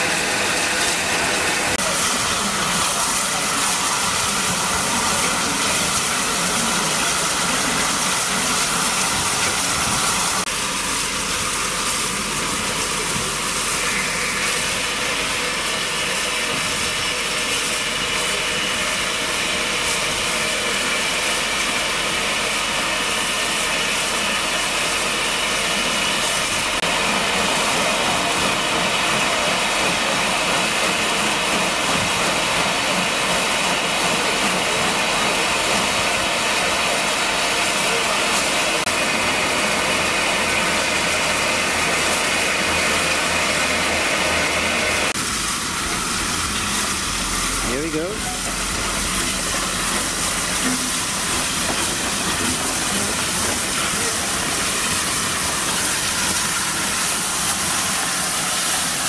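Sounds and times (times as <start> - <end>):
steam locomotive hissing: 0.0 - 59.0.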